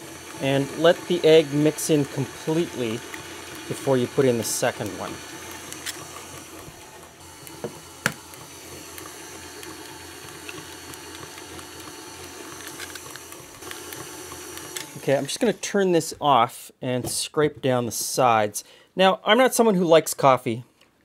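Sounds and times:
stand mixer motor humming: 0.0 - 15.7.

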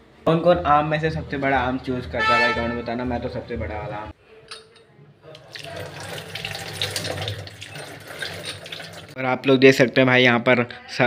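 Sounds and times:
tap water splashing into sink: 5.4 - 9.1.

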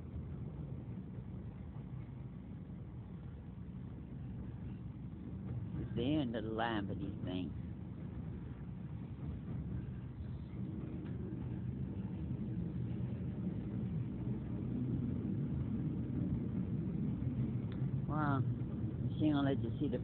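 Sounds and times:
subway train low rumble: 0.0 - 20.0.

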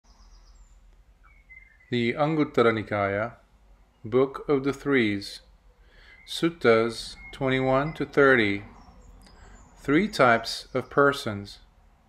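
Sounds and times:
faint high chirps: 0.1 - 2.2, 5.4 - 9.9
low background hiss: 0.1 - 12.0
man speaking: 1.9 - 3.4, 4.0 - 5.5, 6.3 - 8.7, 9.8 - 11.7.

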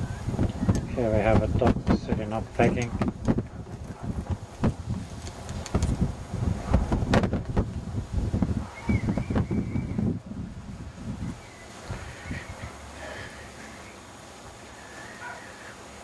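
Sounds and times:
wind buffeting microphone: 0.0 - 14.6.

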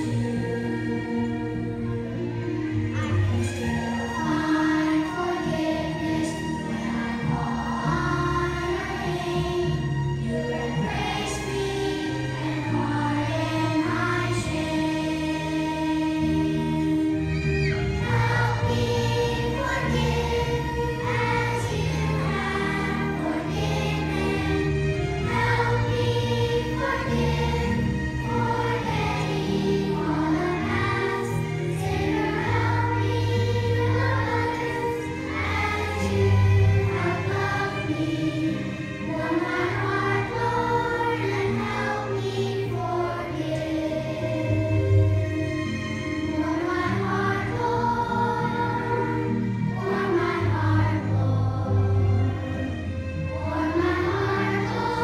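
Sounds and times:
children's choir singing: 0.0 - 55.0.

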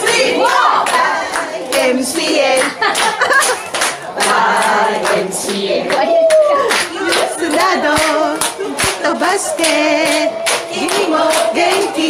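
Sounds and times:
people clapping: 0.0 - 12.0
women singing and calling out: 4.2 - 12.0.

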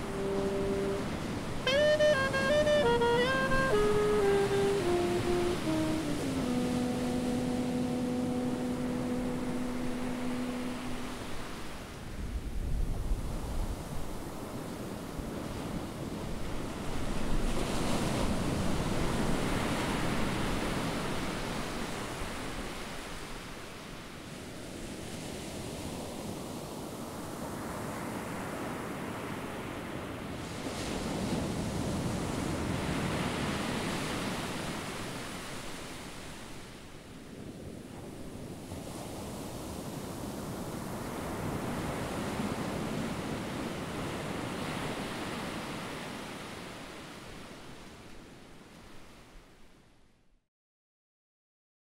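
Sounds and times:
held musical note: 0.0 - 11.5
sea waves washing in: 0.0 - 12.2.

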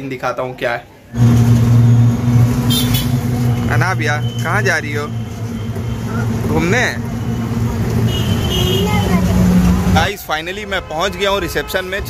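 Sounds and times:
vehicle engine humming: 1.2 - 12.0.

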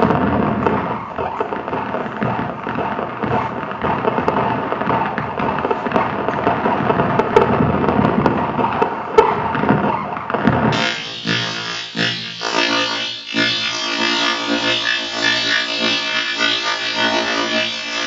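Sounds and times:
dense crackle of clicks and pops: 0.0 - 10.8
steady hum: 10.8 - 18.0.

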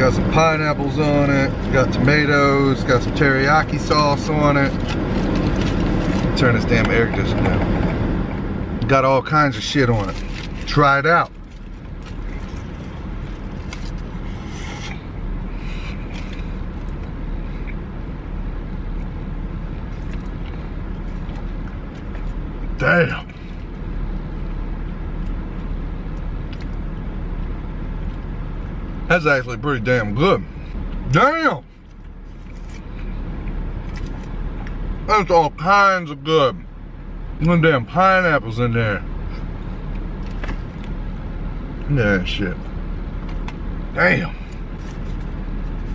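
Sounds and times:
air conditioning blower: 0.0 - 29.2
car engine idling: 0.0 - 45.9.

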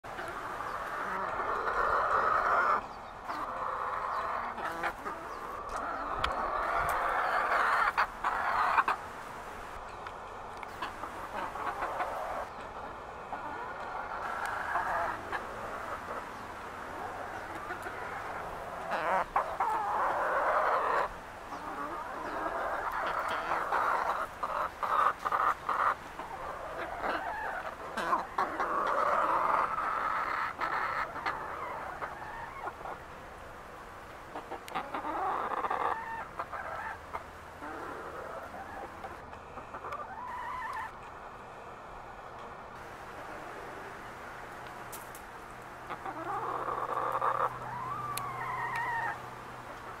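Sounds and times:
chicken clucking: 0.0 - 33.2, 34.1 - 42.6, 44.6 - 50.0.

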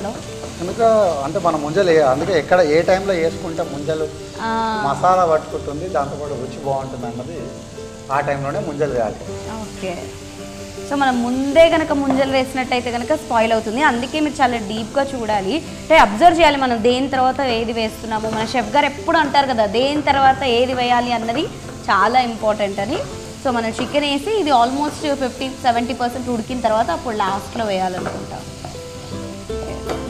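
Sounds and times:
chicken sizzling in a pan: 0.0 - 30.0.

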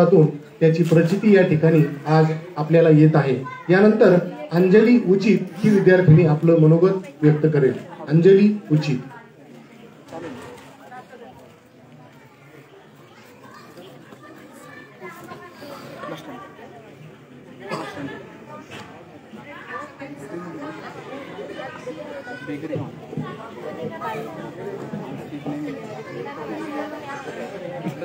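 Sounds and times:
faint chatter of many voices: 0.0 - 28.0
indistinct talking: 0.0 - 28.0.

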